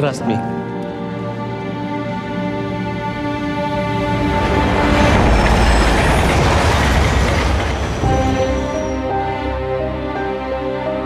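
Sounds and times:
music: 0:00.0 - 0:11.0
train rumbling through tunnel: 0:02.6 - 0:11.0
high squeal of wheels: 0:04.4 - 0:09.3.

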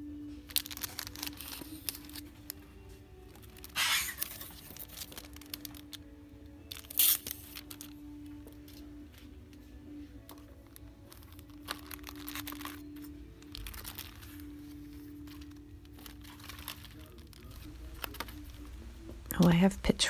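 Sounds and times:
plastic packages crinkling: 0:00.0 - 0:19.4
background music with held notes: 0:00.0 - 0:20.0.

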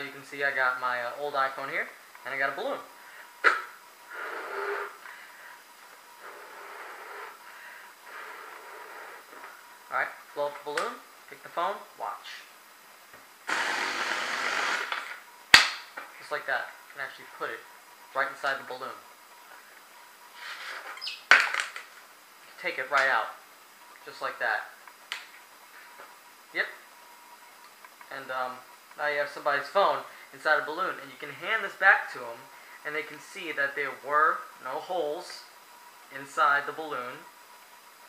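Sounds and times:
breath blown into balloon: 0:03.5 - 0:05.1.

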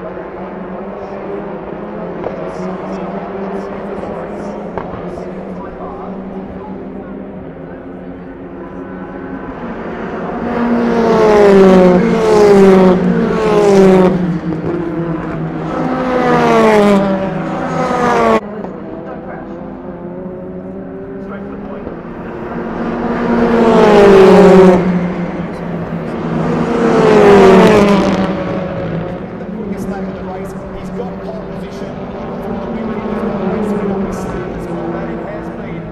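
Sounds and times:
race cars passing at speed: 0:00.0 - 0:35.9.

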